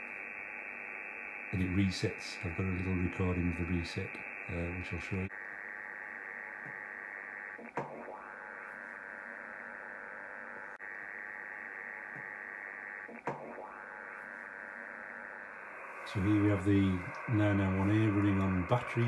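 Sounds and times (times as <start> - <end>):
chirp-like radio break: 0.0 - 19.0
radio interference: 0.0 - 19.0
radio static hiss: 0.0 - 19.0.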